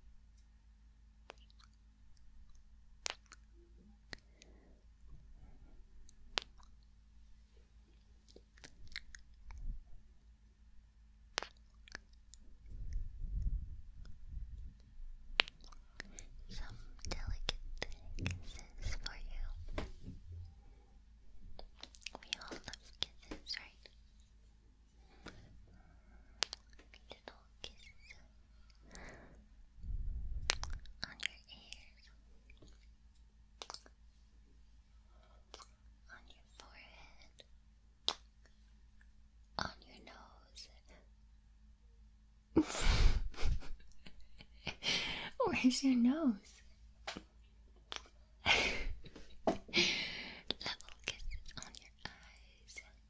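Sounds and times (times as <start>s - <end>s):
small mouth sounds: 1.2s - 1.8s, 2.4s - 4.3s, 6.0s - 6.9s, 8.3s - 9.7s, 11.4s - 14.2s, 15.4s - 19.5s, 21.6s - 24.0s, 26.4s - 28.2s, 30.4s - 32.9s, 33.6s - 34.0s, 35.5s - 38.3s, 47.9s - 48.2s, 50.5s - 52.9s
woman whispering: 16.0s - 19.8s, 22.0s - 23.9s, 26.9s - 28.3s, 30.5s - 32.2s, 35.6s - 37.5s, 39.6s - 41.1s, 45.2s - 46.7s, 50.4s - 53.0s.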